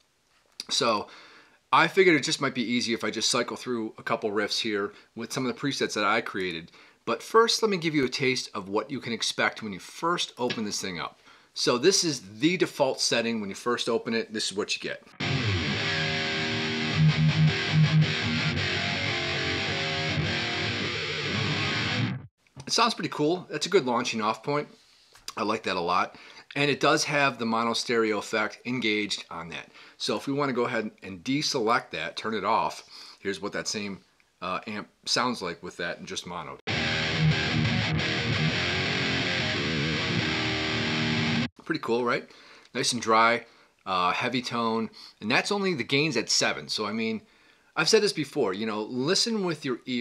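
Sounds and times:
distorted electric guitar riff: 15.2 - 22.3, 36.7 - 41.5.

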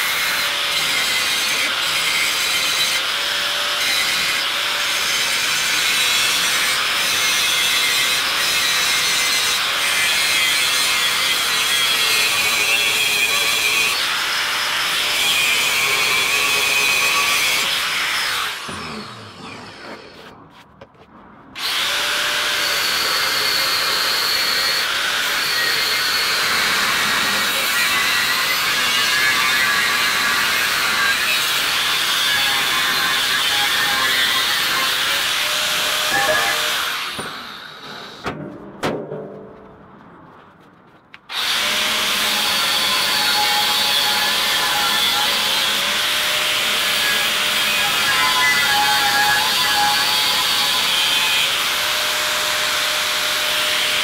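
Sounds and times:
angle grinder grinding steel: 28.6 - 38.2.

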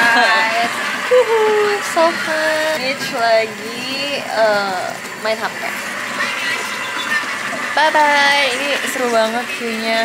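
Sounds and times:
water running into a tub: 0.0 - 10.0.

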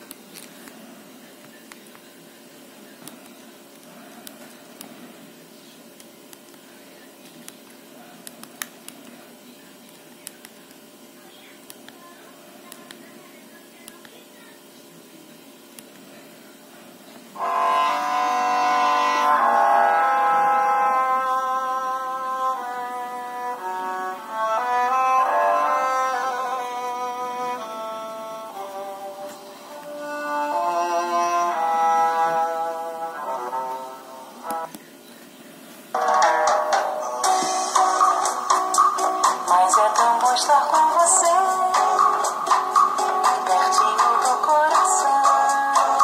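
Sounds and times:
bright phone ringtone: 17.4 - 20.3
phone ringtone melody: 17.4 - 20.4, 36.0 - 40.0.

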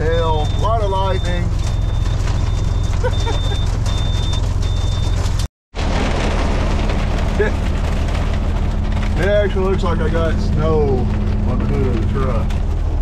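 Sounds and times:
heavy rain and hail drumming: 0.0 - 13.0.

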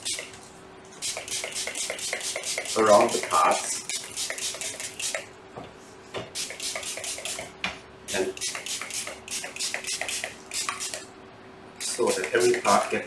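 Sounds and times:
spray bottle squirting: 1.0 - 3.2, 3.9 - 5.3, 6.4 - 7.4, 8.1 - 11.1.

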